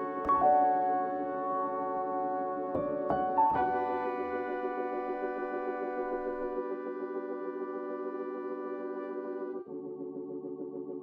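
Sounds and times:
organ-like keyboard chords: 0.0s - 11.0s.

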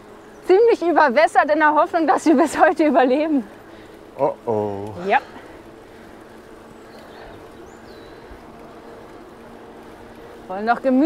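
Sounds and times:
bird chirp: 0.0s - 0.9s, 6.4s - 9.2s
bicycle tyres rolling on asphalt: 0.0s - 11.0s.

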